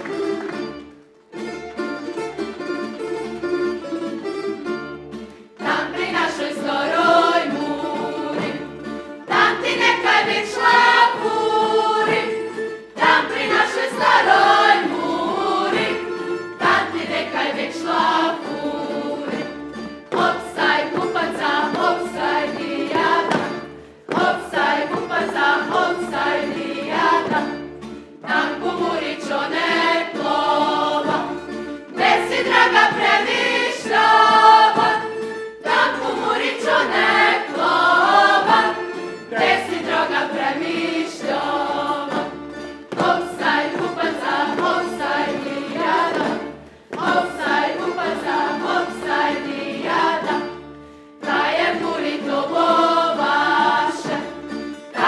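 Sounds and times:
plucked string accompaniment: 0:00.0 - 0:55.0
men and women singing folk song: 0:05.5 - 0:55.0.

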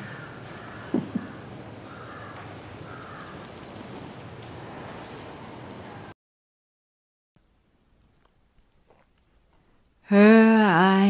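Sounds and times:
crow cawing: 0:00.0 - 0:03.6.

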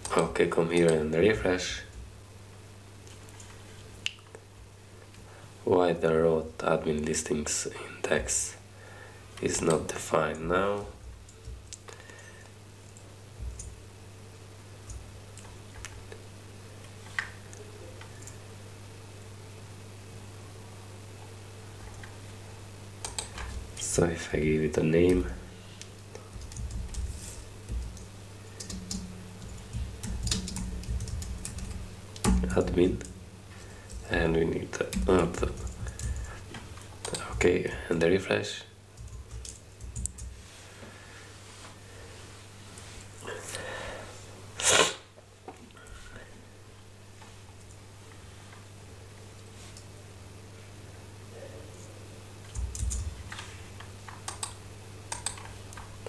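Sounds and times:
low steady hum: 0:00.0 - 0:56.0
typing on keyboard: 0:23.0 - 0:23.6, 0:26.4 - 0:32.6, 0:34.8 - 0:36.3, 0:39.0 - 0:40.3, 0:52.5 - 0:53.1, 0:54.1 - 0:55.5
computer keyboard key clicks: 0:54.1 - 0:55.5.

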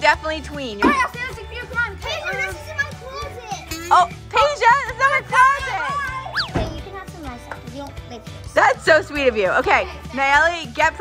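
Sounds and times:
light background music: 0:00.0 - 0:11.0
young girls talking: 0:00.8 - 0:08.3.

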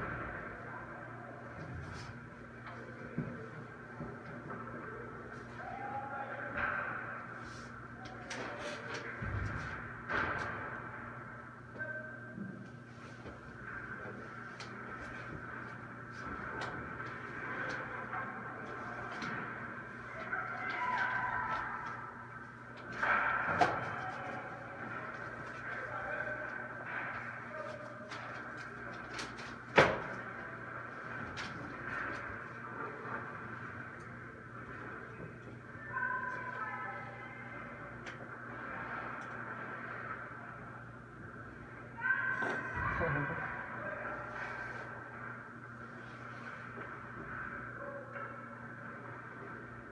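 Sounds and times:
low hum in rink: 0:00.0 - 0:49.9.

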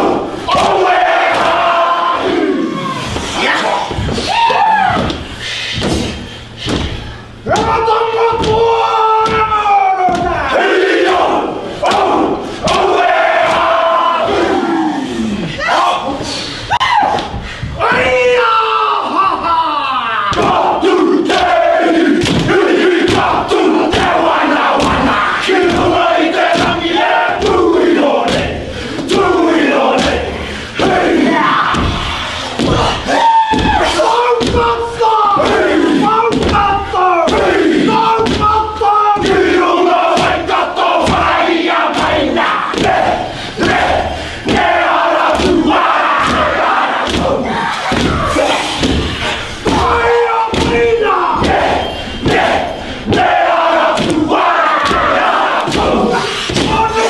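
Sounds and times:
sharp slaps and stamps: 0:04.9 - 0:10.4, 0:12.7 - 0:13.7, 0:22.2 - 0:24.2, 0:24.8 - 0:26.8, 0:28.3 - 0:31.1, 0:34.4 - 0:34.7, 0:35.4 - 0:37.6, 0:38.2 - 0:38.6, 0:39.2 - 0:56.9
men chanting in unison: 0:20.3 - 0:57.0
sharp rhythmic beats: 0:20.3 - 0:57.0.

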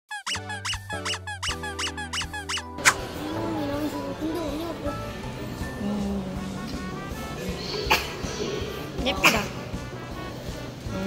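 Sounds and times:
cartoon squeak sound effects: 0:00.1 - 0:03.1
wavering melody: 0:00.1 - 0:03.5.

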